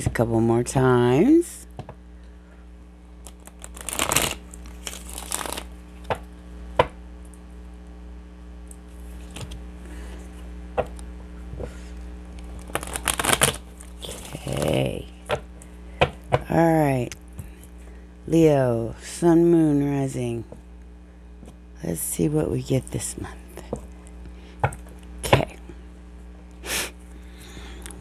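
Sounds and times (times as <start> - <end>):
steady low hum: 0.0 - 28.0
cards being shuffled: 3.2 - 6.2, 9.0 - 9.6, 12.4 - 14.9.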